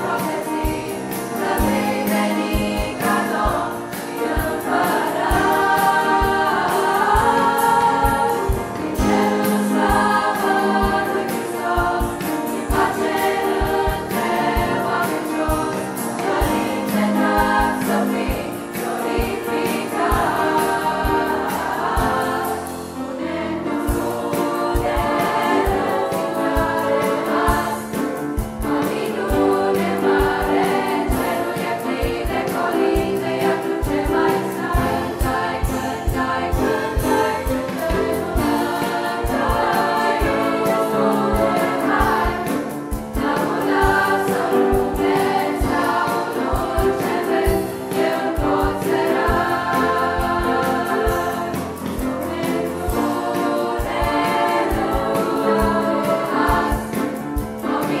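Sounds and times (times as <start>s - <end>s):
men's choir singing a carol: 0.0s - 58.0s.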